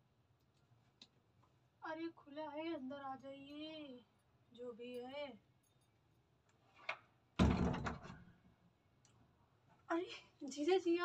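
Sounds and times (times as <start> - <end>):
door banging open: 7.4 - 8.2.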